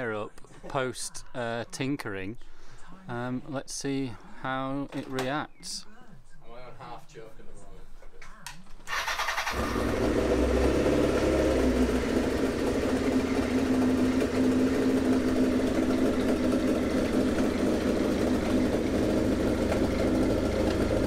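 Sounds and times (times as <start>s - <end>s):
motorcycle engine idling: 8.9s - 21.0s.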